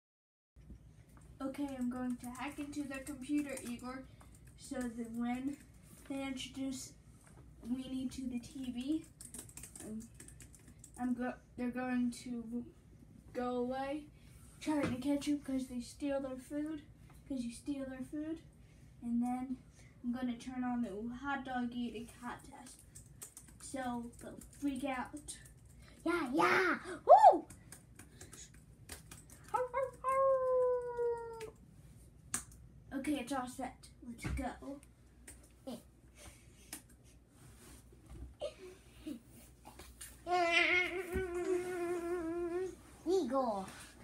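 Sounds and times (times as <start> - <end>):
laptop keyboard typing: 1.5 - 5.7, 8.4 - 11.1, 22.5 - 26.0, 27.5 - 31.5.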